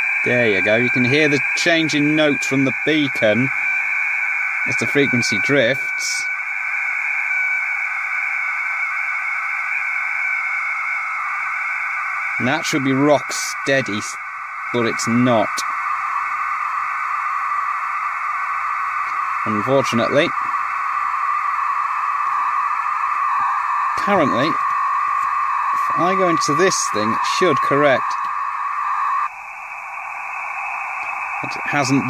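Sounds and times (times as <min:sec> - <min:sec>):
receiver hiss: 0:00.0 - 0:32.0
steady beacon tone: 0:00.0 - 0:32.0
held tone-like note: 0:19.0 - 0:32.0.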